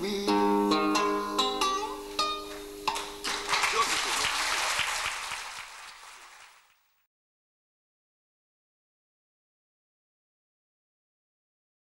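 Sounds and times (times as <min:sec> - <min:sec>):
classical guitar chords: 0:00.0 - 0:03.2
audience applause: 0:03.0 - 0:06.9.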